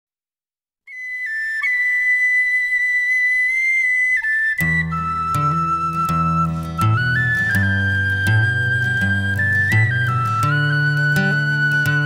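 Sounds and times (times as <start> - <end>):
high woodwind melody: 0.9 - 12.0.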